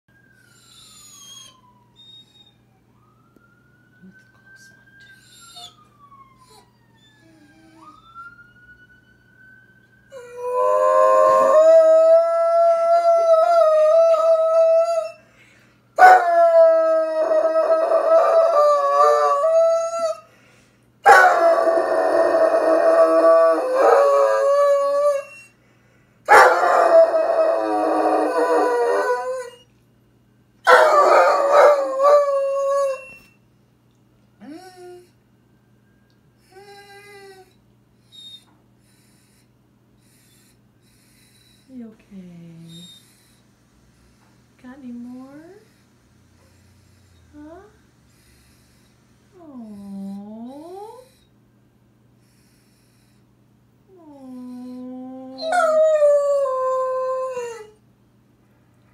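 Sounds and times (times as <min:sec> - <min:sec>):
faint siren rising and falling: 0:00.1 - 0:15.2, 0:15.9 - 0:20.3, 0:34.3 - 0:37.5
dog howling: 0:16.0 - 0:20.2, 0:21.1 - 0:25.5, 0:26.3 - 0:29.6, 0:30.7 - 0:33.2, 0:34.4 - 0:35.1, 0:54.0 - 0:57.8.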